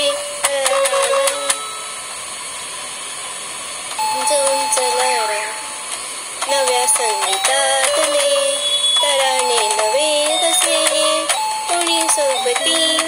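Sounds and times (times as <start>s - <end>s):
woman singing: 0.0s - 1.6s, 4.1s - 5.6s, 6.4s - 13.0s
electronic keyboard note: 4.0s - 5.8s.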